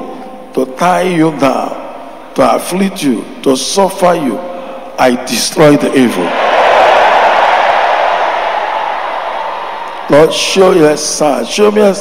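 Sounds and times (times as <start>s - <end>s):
congregation voices roaring: 6.2s - 11.6s.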